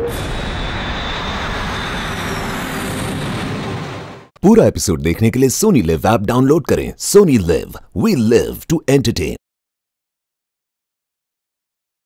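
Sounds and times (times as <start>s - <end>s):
small aircraft engine: 0.0s - 4.3s.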